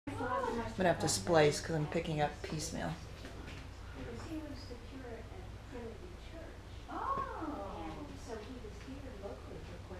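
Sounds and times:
low steady hum: 0.1 - 9.9.

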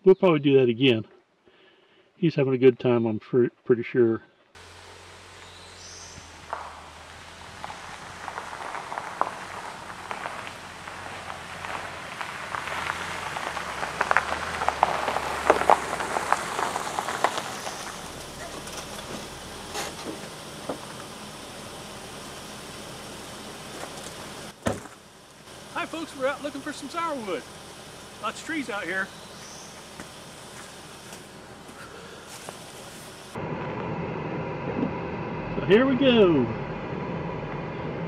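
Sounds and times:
tyres crunching over gravel: 4.6 - 33.4.

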